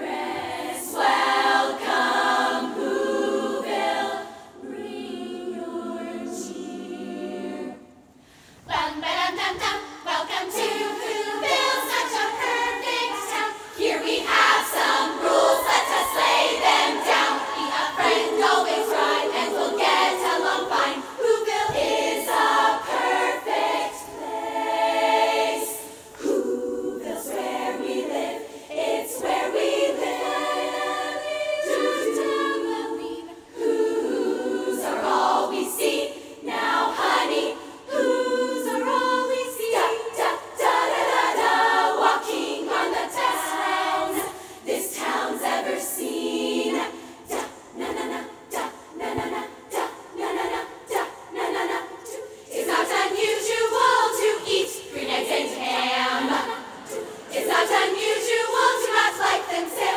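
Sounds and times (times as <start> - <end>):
women's choir singing a cappella: 0.0 - 59.9.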